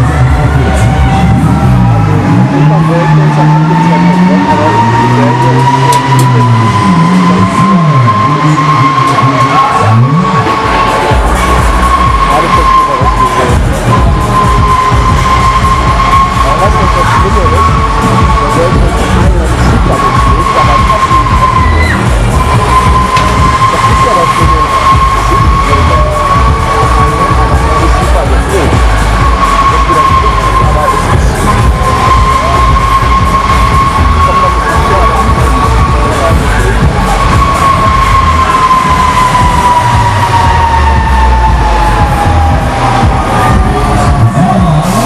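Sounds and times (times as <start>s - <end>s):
fairground music with heavy bass: 0.0s - 45.0s
ride machinery high whine: 0.0s - 45.0s.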